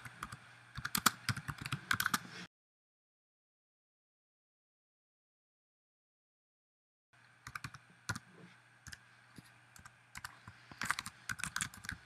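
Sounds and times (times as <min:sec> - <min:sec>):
typing on computer keyboard: 0:00.0 - 0:02.2, 0:07.4 - 0:08.2, 0:09.8 - 0:12.0
faint hum: 0:00.0 - 0:02.5, 0:07.2 - 0:12.0.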